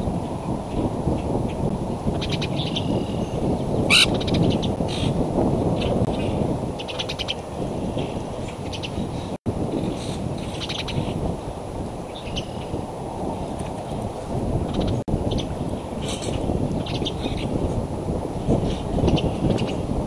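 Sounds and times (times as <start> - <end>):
wind rumble: 0.0 - 20.0
bird chirps and trills: 1.5 - 9.3, 9.9 - 11.2, 12.1 - 12.8, 14.7 - 17.6.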